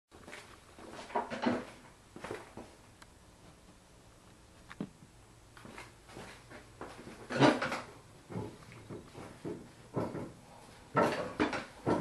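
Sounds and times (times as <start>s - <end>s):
faint footsteps: 0.2s - 2.8s, 3.4s - 7.3s.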